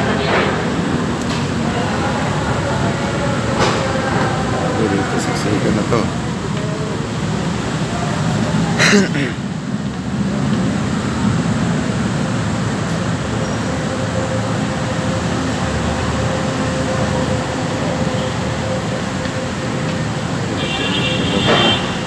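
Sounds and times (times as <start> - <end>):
crowd noise: 0.0 - 22.0
road and rail traffic rumble: 0.0 - 22.0.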